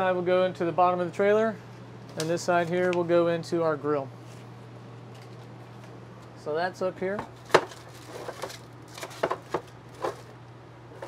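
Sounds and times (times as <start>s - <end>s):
steady low hum: 0.0s - 11.0s
knocks and clatters on shelf: 7.2s - 10.3s.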